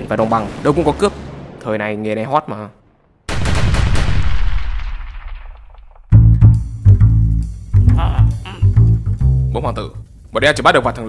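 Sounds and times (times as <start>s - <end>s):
cannon blast with deep rumble: 2.8s - 6.1s
gunshots: 3.3s - 6.1s.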